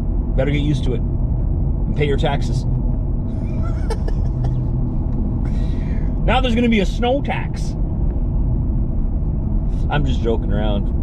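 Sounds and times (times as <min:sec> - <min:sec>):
road and engine drone in cabin: 0:00.0 - 0:11.0.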